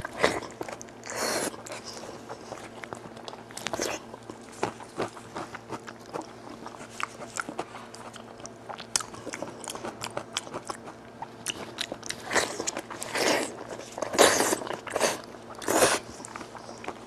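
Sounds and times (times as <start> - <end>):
wet chewing and mouth clicks: 0.0 - 17.0.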